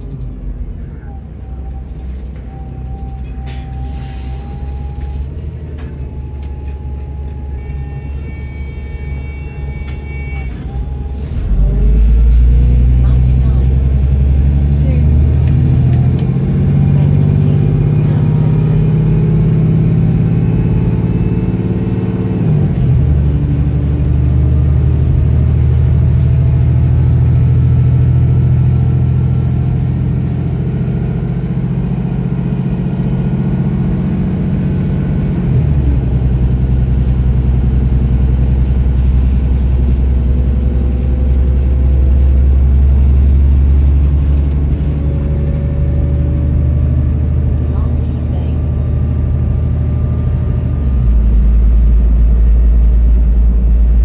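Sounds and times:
bus diesel engine pulling hard: 0.0 - 54.0.

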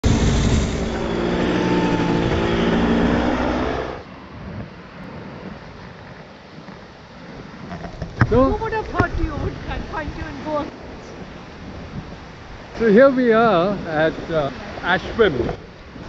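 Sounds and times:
paramotor engine droning: 0.0 - 4.1
surf breaking on beach: 7.1 - 16.0.

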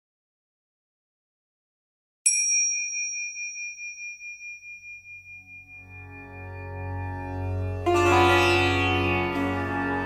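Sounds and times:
small high-pitched bell ringing: 2.3 - 6.3.

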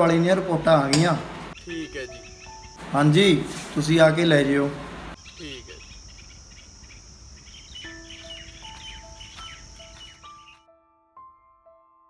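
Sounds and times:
bird chirps: 1.5 - 3.3, 5.1 - 10.6
high-pitched insect drone: 1.6 - 3.0, 5.2 - 10.5
slow piano notes: 7.8 - 12.0.

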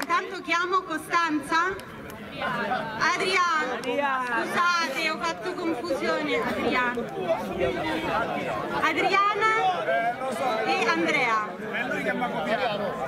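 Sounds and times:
overlapping chatter: 0.0 - 13.0.

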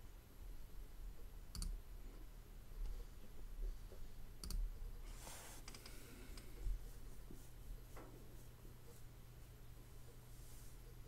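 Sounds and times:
steady low hum: 0.0 - 11.0
computer mouse clicks: 1.5 - 1.8, 4.4 - 4.6.

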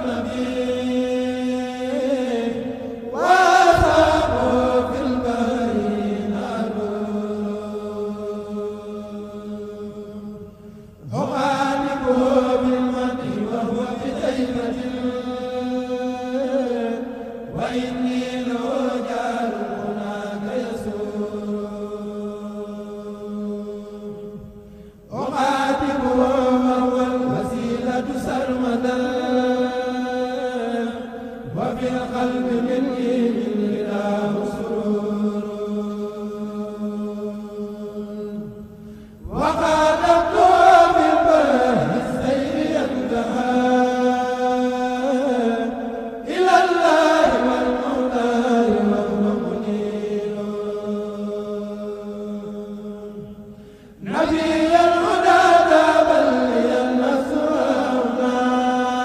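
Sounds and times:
young men chanting devotional poem: 0.0 - 59.0.

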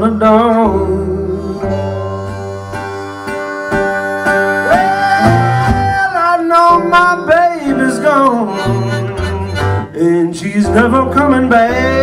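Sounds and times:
blues harmonica: 0.0 - 12.0
plucked bass notes: 0.0 - 12.0
slide guitar: 0.0 - 12.0.

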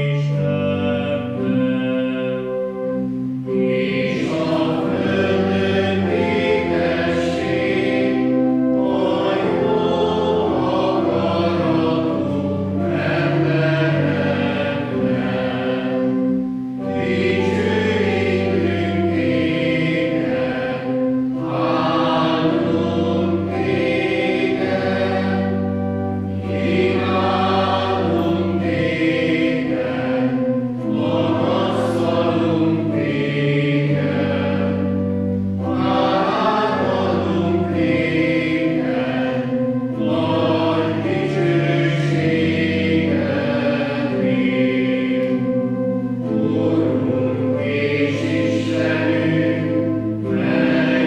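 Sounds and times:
choir singing a hymn: 0.0 - 51.0
organ chords: 0.0 - 51.0.

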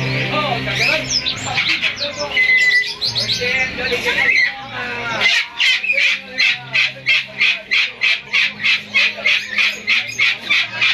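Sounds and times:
cockatoo harsh calls: 0.8 - 3.5, 4.1 - 10.9.

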